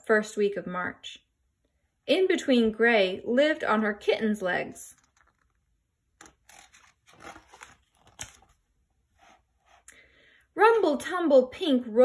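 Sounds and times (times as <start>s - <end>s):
book page turning: 5.0s - 9.9s.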